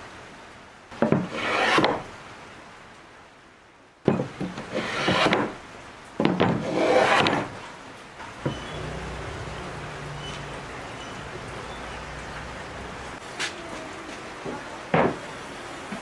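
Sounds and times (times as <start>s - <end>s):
hand plane shaving wood: 1.3s - 2.0s, 4.7s - 5.5s, 6.6s - 7.5s.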